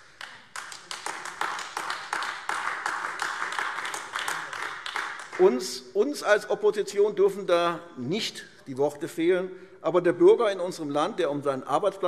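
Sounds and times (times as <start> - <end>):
group of people clapping: 0.0 - 5.8.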